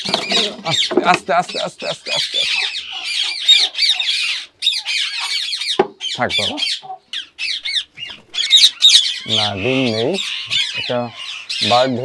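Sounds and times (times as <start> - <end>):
flock of parakeets calling: 0.0 - 12.0.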